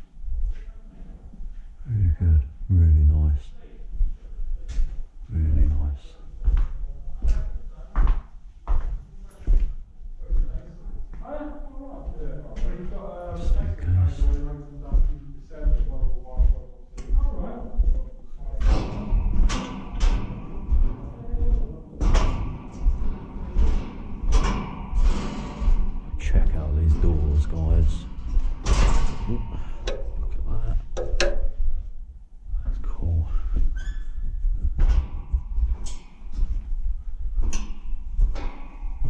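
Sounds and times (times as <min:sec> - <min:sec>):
footsteps on metal grating: 0:34.4 - 0:39.0.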